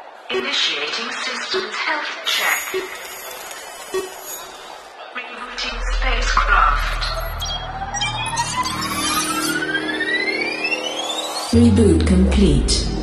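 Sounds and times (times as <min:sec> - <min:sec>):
glitchy electronic clicks: 0:02.3 - 0:04.9.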